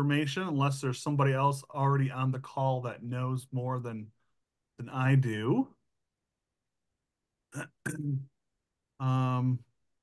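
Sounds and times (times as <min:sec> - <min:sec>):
man clearing his throat: 0:07.5 - 0:08.3.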